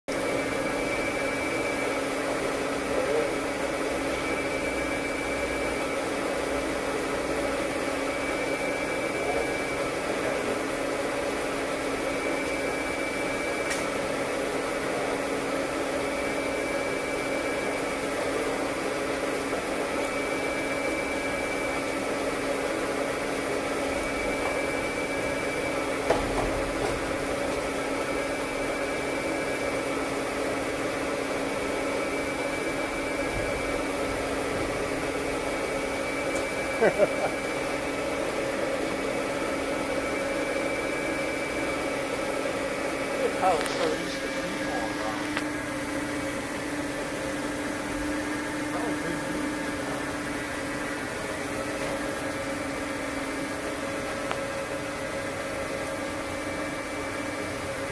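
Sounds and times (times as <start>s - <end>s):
machinery droning: 0.1s - 57.9s.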